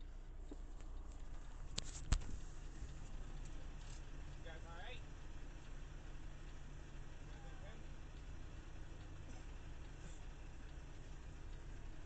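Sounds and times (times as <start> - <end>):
semi truck idling: 0.0 - 12.0.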